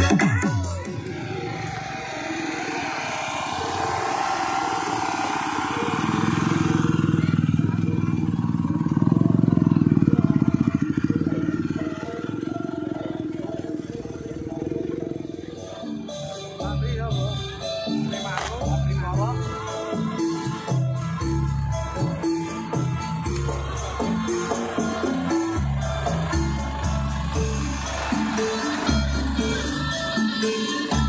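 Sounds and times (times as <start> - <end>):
crowd voices: 0.0 - 31.0
motor scooter engines: 0.0 - 31.0
music from loudspeakers: 0.0 - 31.0.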